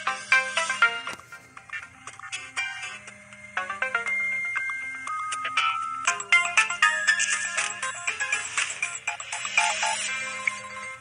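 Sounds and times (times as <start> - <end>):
mobile phone ringtone melody: 0.0 - 11.0.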